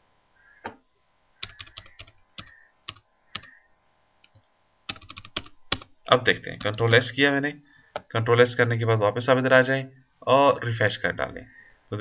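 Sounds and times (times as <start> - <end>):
computer keyboard keystrokes: 1.4 - 3.6, 4.3 - 5.9.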